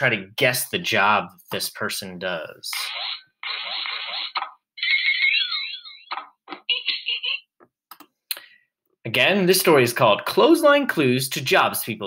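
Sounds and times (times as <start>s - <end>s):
clicks: 7.6s - 9.0s.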